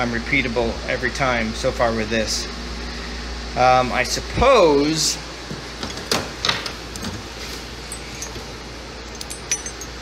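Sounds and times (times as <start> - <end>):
metallic ring: 7.8 - 10.0
steel plates clinking: 9.1 - 10.0.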